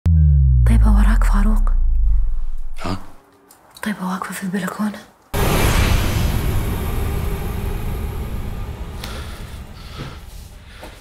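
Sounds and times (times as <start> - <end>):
deep booming wash: 5.4 - 10.8.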